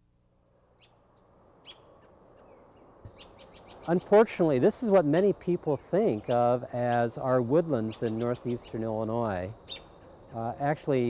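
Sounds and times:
faint outdoor ambience: 0.0s - 11.0s
high bird chirps: 1.6s - 4.2s, 6.1s - 8.8s, 9.5s - 10.4s.

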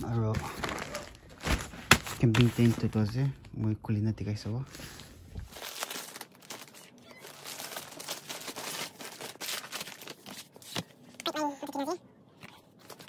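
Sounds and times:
paper crinkling and rustling: 0.0s - 3.8s, 4.8s - 11.4s, 12.4s - 13.0s.

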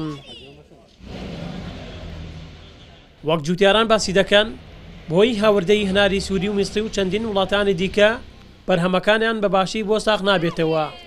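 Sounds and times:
distant men's voices chatter: 0.0s - 10.5s
steady low rumble: 3.8s - 8.7s.

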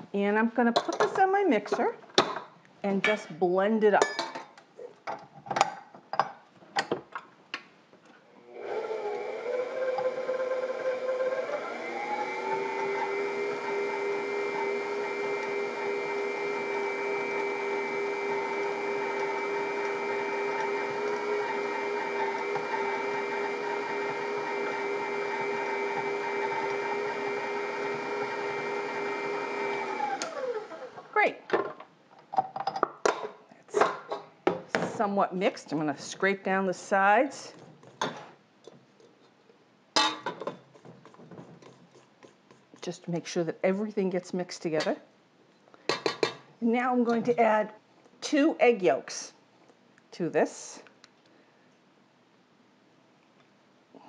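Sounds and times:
stand mixer motor running: 8.6s - 30.9s.

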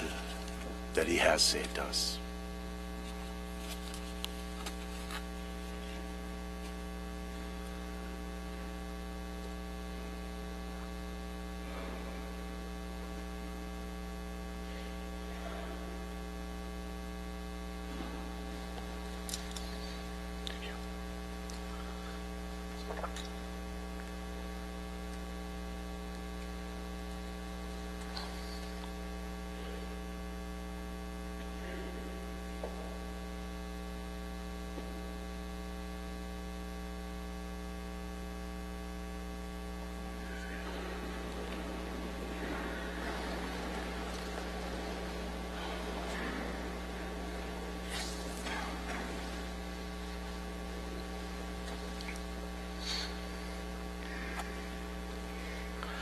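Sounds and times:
electrical mains hum: 0.0s - 56.0s.

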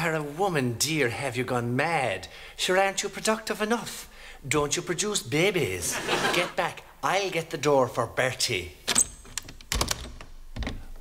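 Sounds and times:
door clicks and knocks: 8.9s - 11.0s.

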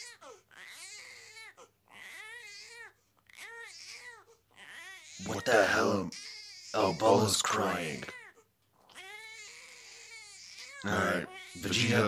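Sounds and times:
baby crying: 0.0s - 12.0s.

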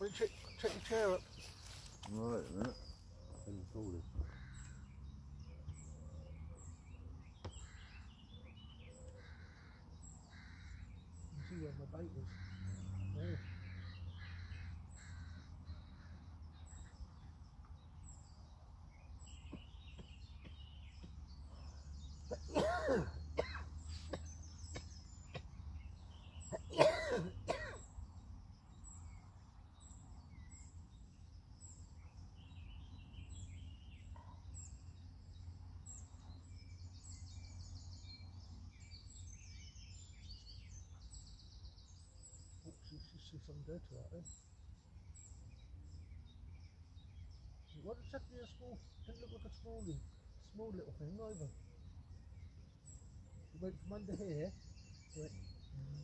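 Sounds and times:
small birds chirping: 0.0s - 56.0s
crow cawing: 4.2s - 4.9s, 9.1s - 16.2s.

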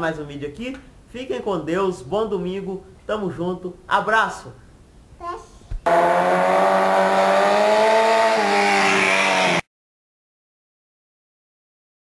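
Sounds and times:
motorcycle engine at high revs: 5.8s - 9.6s.

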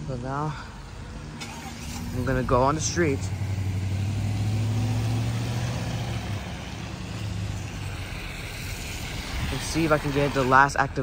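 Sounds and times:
car engine hum: 0.0s - 11.0s
tyre hiss on wet road: 2.9s - 11.0s.

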